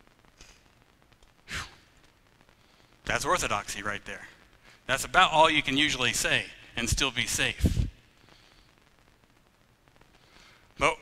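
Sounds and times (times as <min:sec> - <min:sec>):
man breathing: 0:02.5 - 0:03.0, 0:04.5 - 0:04.9, 0:07.8 - 0:08.9, 0:10.1 - 0:10.8.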